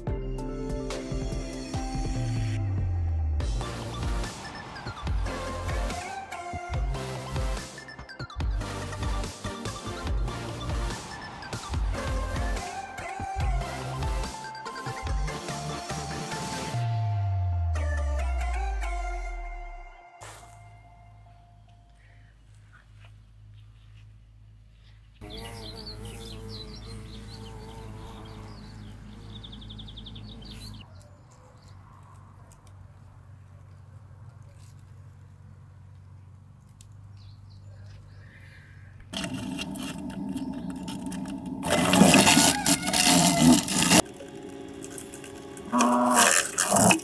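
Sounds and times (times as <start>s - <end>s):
wasp wings buzzing: 25.2s - 29.4s, 39.1s - 47.0s.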